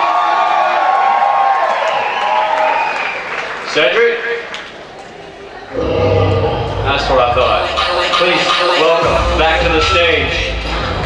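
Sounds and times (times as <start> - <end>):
hall noise: 5.6 - 11.0
man speaking over pa: 6.8 - 10.4
music with heavy bass beat: 6.9 - 11.0.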